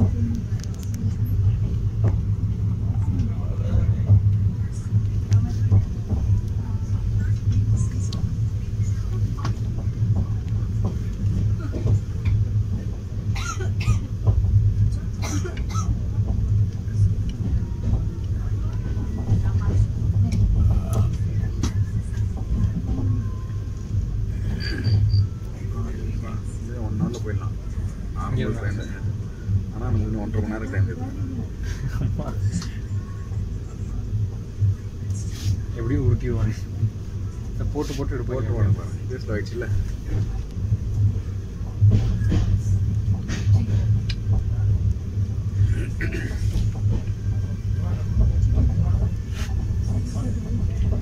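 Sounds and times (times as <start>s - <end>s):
train rumbling: 0.0s - 51.0s.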